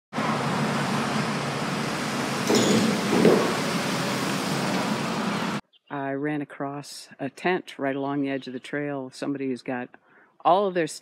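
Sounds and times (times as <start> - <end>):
road traffic noise: 0.1 - 5.6
louder vehicle passing: 0.2 - 5.6.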